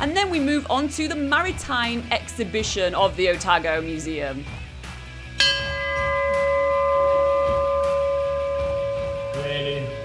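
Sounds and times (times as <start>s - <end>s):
ship's bell ringing: 5.4s - 10.0s.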